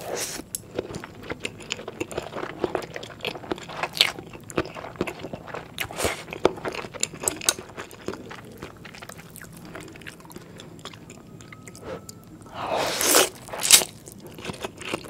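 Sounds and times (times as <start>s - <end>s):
chewing and slurping noodles: 0.0s - 15.0s.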